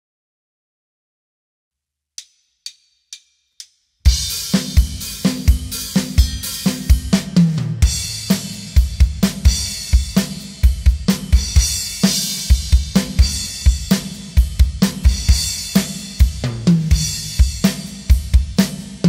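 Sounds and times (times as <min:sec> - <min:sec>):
bass drum and snare strokes: 0:02.2 - 0:19.0
hi-hat and cymbals: 0:02.2 - 0:19.0
drum fill: 0:04.1 - 0:19.0.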